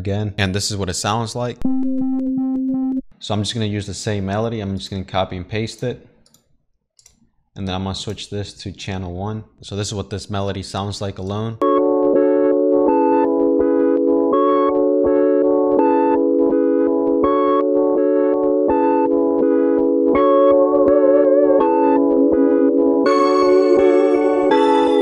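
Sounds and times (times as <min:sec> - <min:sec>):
pulsing synth trap melody: 0:11.6 - 0:25.0.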